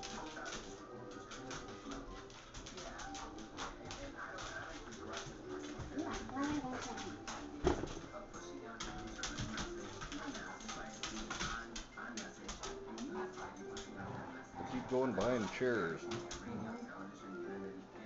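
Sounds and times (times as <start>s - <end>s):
dogs scuffling with toy: 0.0s - 17.0s
indistinct voices: 0.0s - 17.3s
background music: 0.0s - 18.0s.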